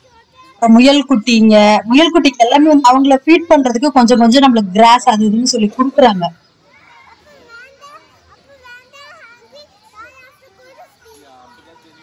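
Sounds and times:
young children talking: 0.0 - 12.0.

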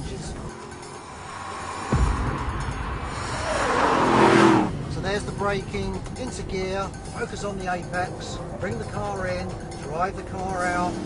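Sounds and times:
tyre and road noise: 0.0 - 11.0.

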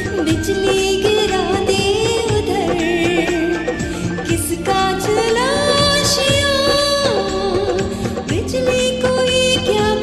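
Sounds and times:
instrumental accompaniment: 0.0 - 10.0
woman singing into microphone: 0.0 - 10.0.

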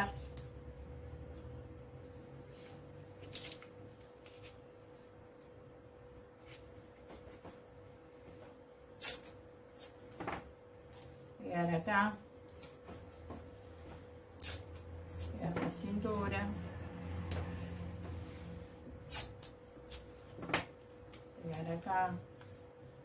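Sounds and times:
masking tape pulled and torn: 9.0 - 10.1, 14.4 - 15.4, 19.0 - 21.8.

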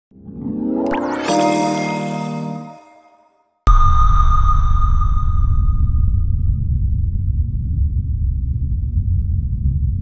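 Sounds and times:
high ringing tone: 0.9 - 6.6
deep steady rumble: 3.7 - 10.0.

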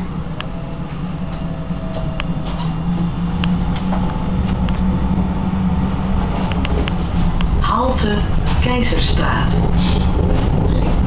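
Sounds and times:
faint whine: 0.0 - 11.0
tram rumbling: 0.0 - 11.0.

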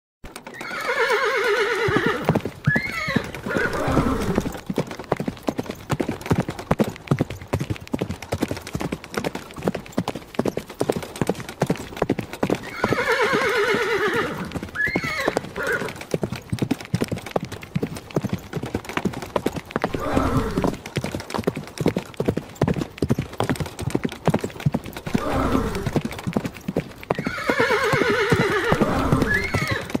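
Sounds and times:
horse hoofbeats galloping: 0.2 - 30.0
horse neighing: 0.5 - 4.6, 12.6 - 16.0, 19.9 - 20.8, 25.1 - 26.0, 27.1 - 30.0
lower horse calls: 19.9 - 20.8, 25.1 - 26.0, 27.2 - 29.9.

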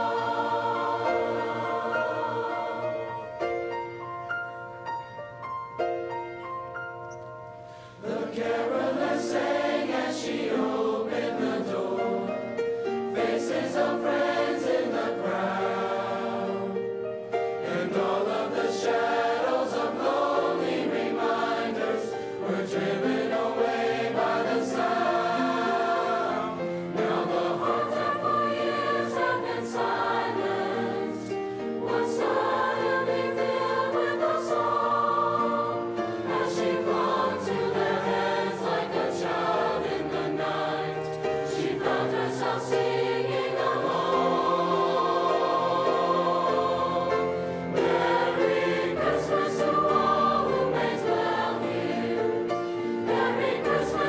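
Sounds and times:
girls' choir singing: 0.0 - 3.7, 8.0 - 54.0.

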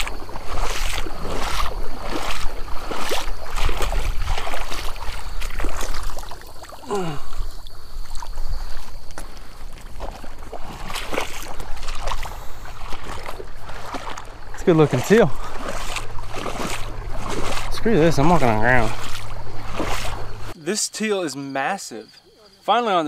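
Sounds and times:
wading through water: 0.0 - 20.6.

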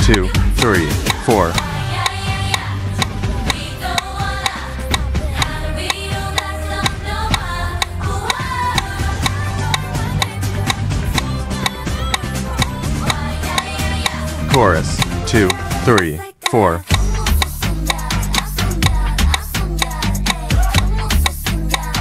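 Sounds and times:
instrumental track with heavy bass: 0.0 - 22.0
women singing pop song: 0.0 - 22.0
metronome click: 17.3 - 20.5, 21.2 - 22.0.

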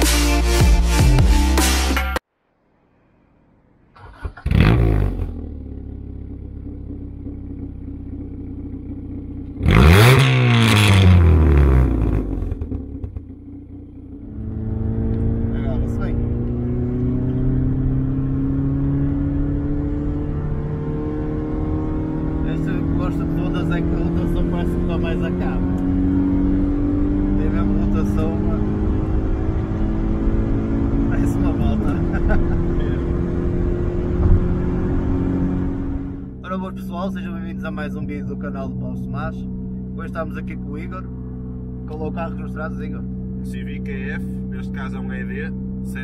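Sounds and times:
car engine starting and idling: 3.4 - 46.0
car engine accelerating: 3.9 - 46.0
car engine revving: 3.9 - 46.0.

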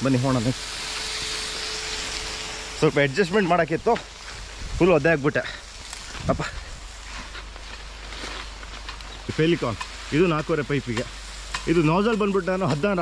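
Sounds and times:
man talking: 0.0 - 0.6, 2.8 - 4.1, 4.7 - 5.6, 9.3 - 13.0
sprinkler water spray hissing: 0.0 - 13.0.

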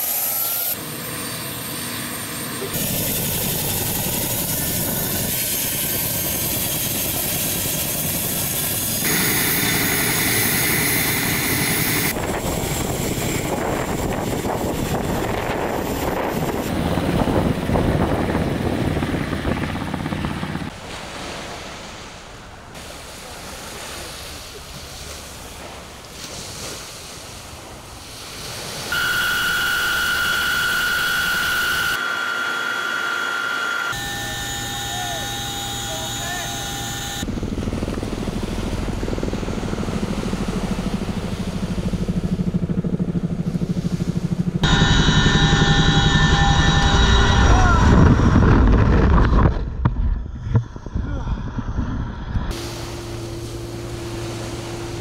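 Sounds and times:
steady high whine: 0.0 - 20.7, 28.9 - 55.0
helicopter in flight: 0.0 - 20.8, 28.7 - 50.7, 52.0 - 55.0
helicopter turbines and rotors: 0.0 - 20.8, 28.7 - 55.0.

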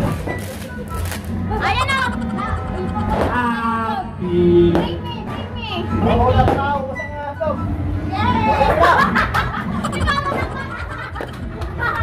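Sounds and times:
music playing in room: 0.0 - 4.2
child's voice: 1.5 - 4.0.

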